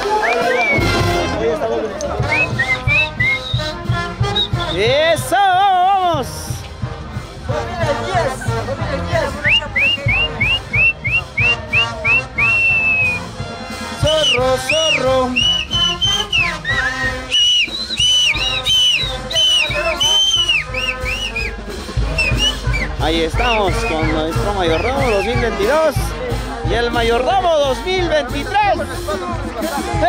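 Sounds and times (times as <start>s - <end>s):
street band playing: 0.0s - 30.0s
steady drum beat: 2.2s - 30.0s.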